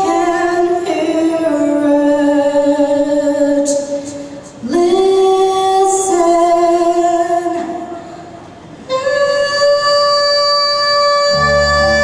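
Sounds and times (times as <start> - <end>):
woman singing long notes: 8.9 - 12.0.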